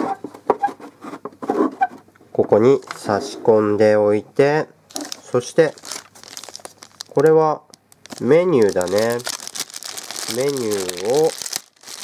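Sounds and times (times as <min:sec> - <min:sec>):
faint plastic squeaks: 0:00.0 - 0:02.1.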